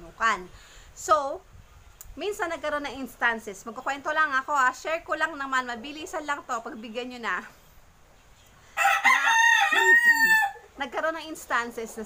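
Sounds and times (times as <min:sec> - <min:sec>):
rooster crowing: 0:08.8 - 0:10.7.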